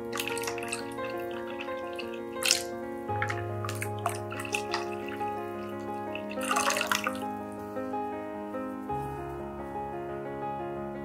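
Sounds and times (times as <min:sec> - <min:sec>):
liquid pouring into a bowl: 0:00.0 - 0:07.4
background music: 0:00.0 - 0:11.0.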